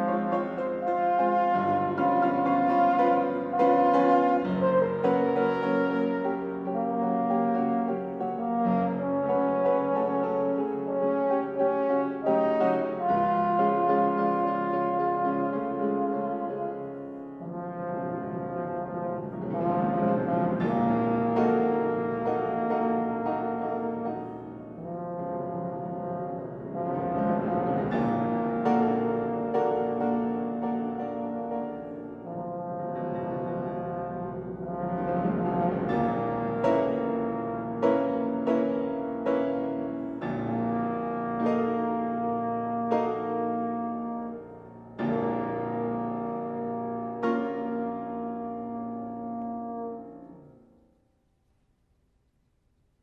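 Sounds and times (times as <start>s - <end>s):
trombone playing slow melody: 0.0s - 50.8s
grand piano accompaniment: 0.0s - 51.1s.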